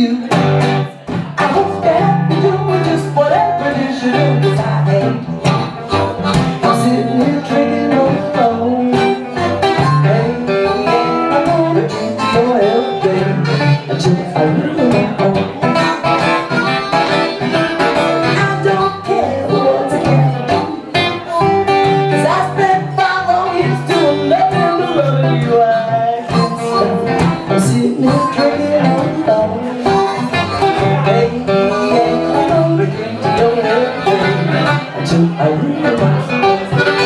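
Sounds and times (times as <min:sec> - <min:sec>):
acoustic guitar: 0:00.0 - 0:37.0
harmonica: 0:02.0 - 0:37.0.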